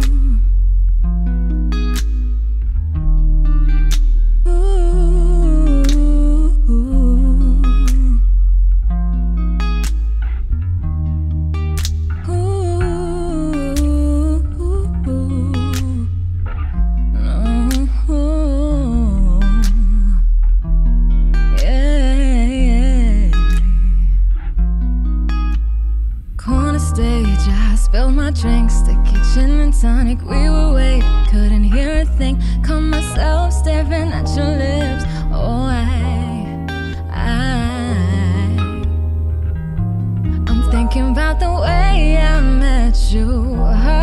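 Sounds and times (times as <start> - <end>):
hummed vocal with vibrato: 0.0 - 0.6, 4.4 - 8.4, 12.3 - 16.3, 17.2 - 20.4, 21.5 - 24.3, 26.4 - 39.0, 40.3 - 44.0
woman singing: 0.0 - 0.6, 4.4 - 8.4, 12.2 - 16.2, 17.1 - 20.4, 21.5 - 24.2, 26.4 - 39.0, 40.4 - 44.0
deep steady bass: 0.0 - 44.0
electric guitar notes: 0.0 - 44.0.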